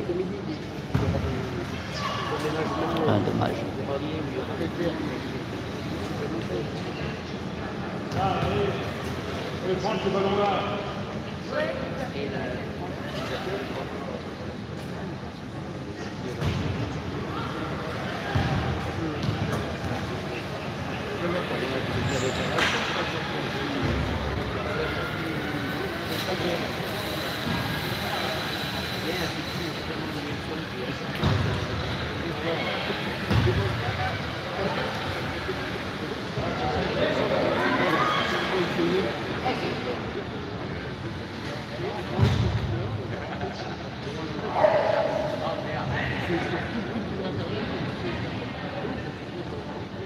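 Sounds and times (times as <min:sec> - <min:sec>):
hubbub of voices: 0:00.0 - 0:50.0.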